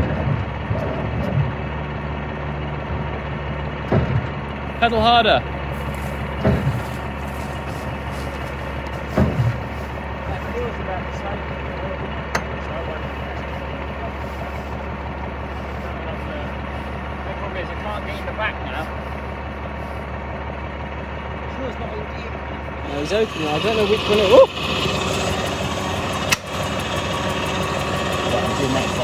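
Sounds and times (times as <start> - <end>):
vehicle engine idling: 0.0 - 29.0.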